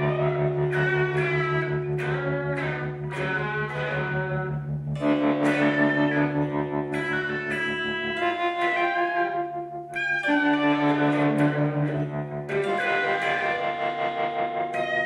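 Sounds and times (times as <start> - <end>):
electric guitar duo: 0.0 - 15.0.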